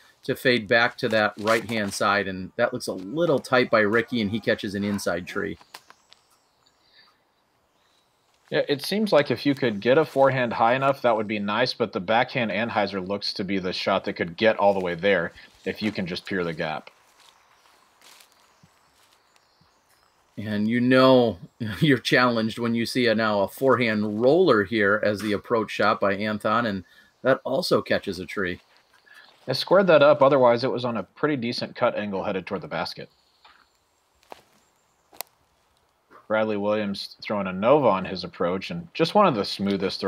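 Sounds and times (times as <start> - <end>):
faint outdoor ambience: 0.0 - 40.0
footsteps on forest floor: 0.8 - 2.2, 2.9 - 6.7, 7.9 - 10.9, 14.4 - 20.6, 27.8 - 29.7, 33.5 - 36.2.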